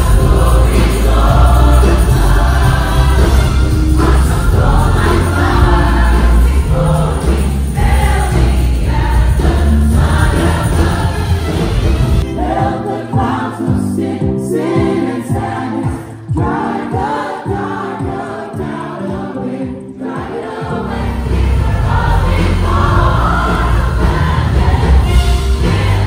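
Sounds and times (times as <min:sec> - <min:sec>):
gospel choir singing: 0:00.0 - 0:26.0
instrumental backing with heavy bass: 0:00.0 - 0:26.0.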